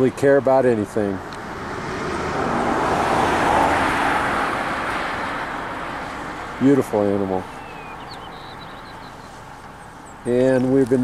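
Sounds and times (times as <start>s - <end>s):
car passing by: 0.9s - 9.9s.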